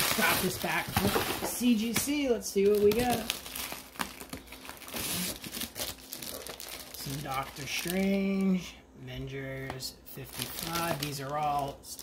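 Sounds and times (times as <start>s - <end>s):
plastic wrapping crinkling: 0.0s - 8.7s, 10.2s - 12.0s.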